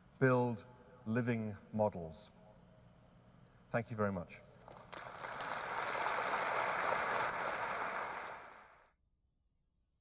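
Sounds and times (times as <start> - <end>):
audience applauding: 4.7 - 8.9.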